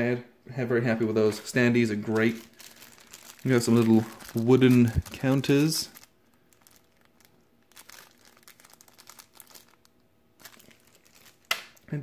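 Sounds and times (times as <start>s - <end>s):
plastic bag crinkling: 1.2s - 12.0s.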